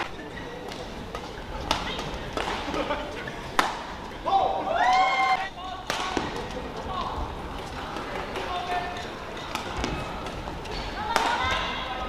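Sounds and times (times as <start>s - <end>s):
rackets striking shuttlecock: 0.0s - 2.9s, 3.5s - 4.0s, 5.8s - 6.6s, 7.9s - 11.6s
shoes squeaking on court floor: 0.0s - 4.2s, 6.2s - 11.8s
murmur of hall: 0.0s - 12.0s.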